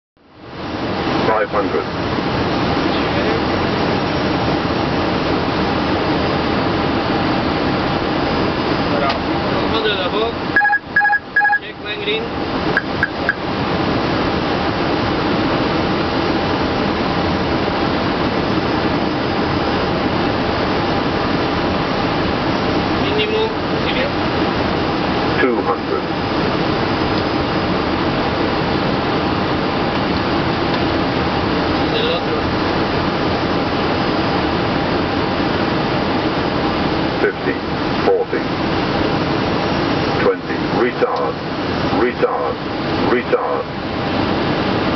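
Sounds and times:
aircraft engine noise: 0:00.2 - 0:44.9
rushing air noise in cockpit: 0:00.2 - 0:44.9
automated altitude callout: 0:10.5 - 0:12.1.

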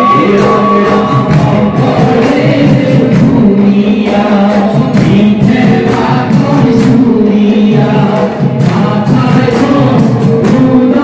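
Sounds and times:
brass hand cymbals struck: 0:00.0 - 0:07.4
men's chorus singing a hymn: 0:00.0 - 0:11.0.

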